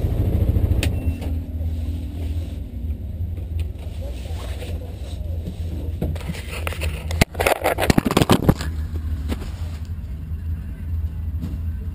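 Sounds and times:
vehicle engine drone: 0:00.0 - 0:11.9.

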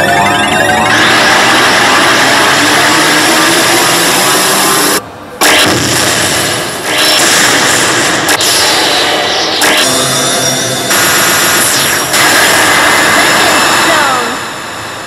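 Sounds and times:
loud dense noisy roar: 0:00.0 - 0:15.0.

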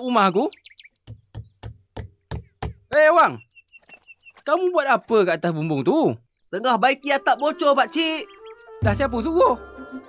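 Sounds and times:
knocking on a roof: 0:01.1 - 0:02.8.

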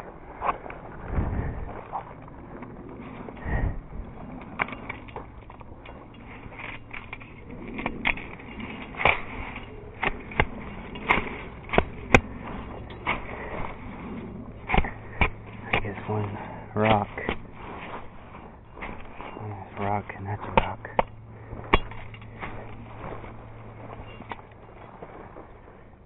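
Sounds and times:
twigs snapping: 0:04.4 - 0:25.4.

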